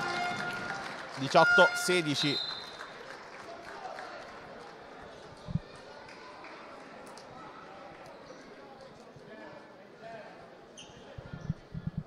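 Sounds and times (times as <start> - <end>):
murmur of sports hall crowd: 0.0 - 12.0.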